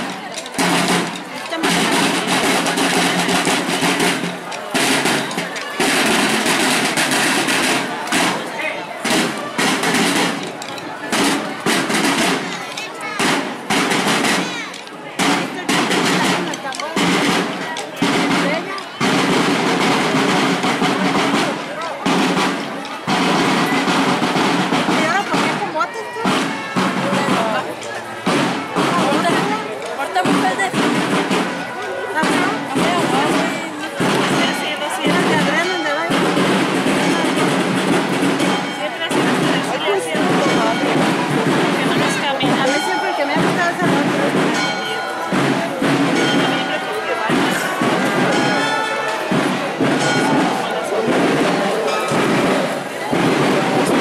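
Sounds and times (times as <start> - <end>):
crowd talking: 0.0 - 54.0
marching drums: 0.0 - 54.0.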